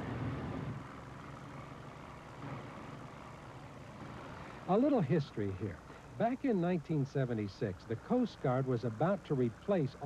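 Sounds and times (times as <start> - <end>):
motorboat engine humming: 0.0 - 10.0.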